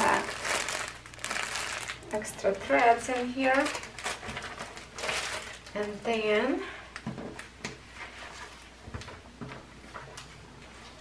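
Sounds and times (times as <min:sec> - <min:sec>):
plastic bag crinkling and rustling: 0:00.0 - 0:08.7.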